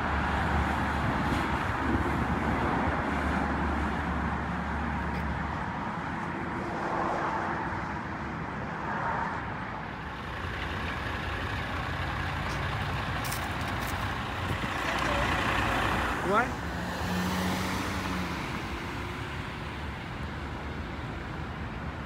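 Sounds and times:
road traffic: 0.0s - 22.0s
truck diesel engine rumbling: 9.8s - 22.0s.

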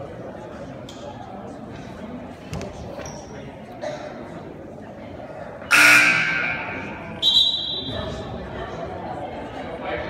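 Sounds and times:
scoreboard horn: 5.7s - 7.0s
referee's whistle: 5.7s - 8.0s.

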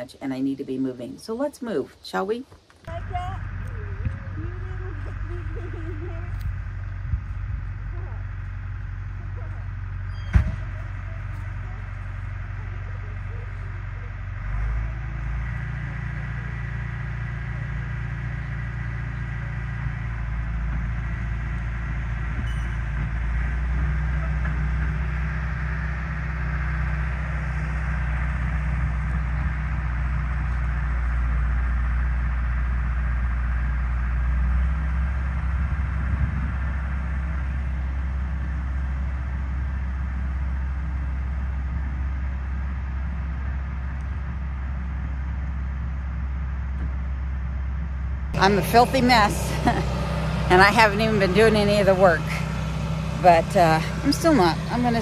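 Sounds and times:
heavy machinery engine rumbling: 2.8s - 55.0s.

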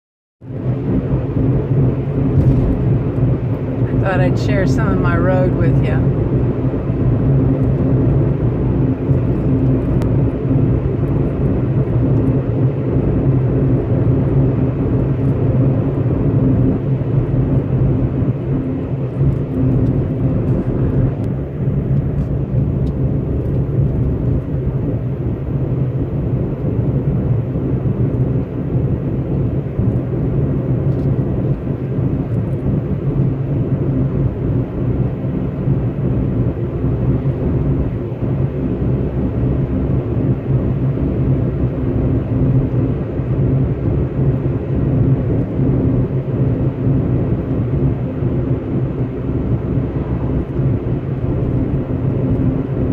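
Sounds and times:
vehicle engine drone: 0.4s - 52.9s
tyre rumble: 2.3s - 3.0s.

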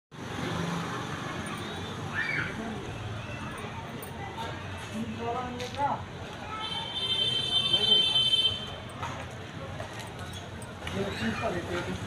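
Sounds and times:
road traffic with engine hum: 0.1s - 12.0s.

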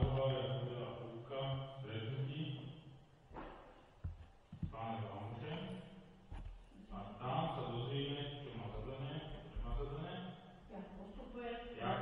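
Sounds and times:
man talking in echoing hall: 0.0s - 10.7s, 11.3s - 12.0s.

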